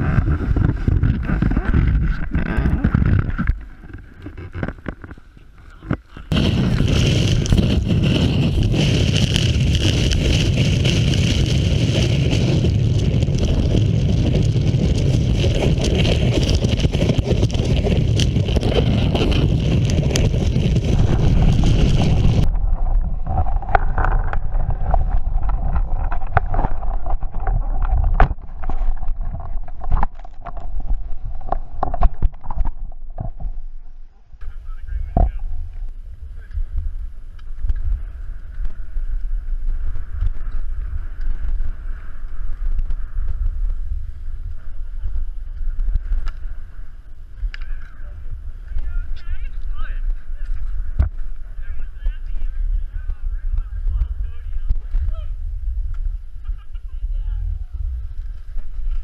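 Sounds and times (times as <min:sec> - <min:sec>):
snowboard carving on snow: 0:00.0 - 0:04.7, 0:06.2 - 0:30.0, 0:36.1 - 0:59.0
wind rushing over microphone: 0:00.0 - 0:05.1, 0:05.8 - 0:59.0
scraping and clicking on snow: 0:00.0 - 0:33.4, 0:37.4 - 0:59.0.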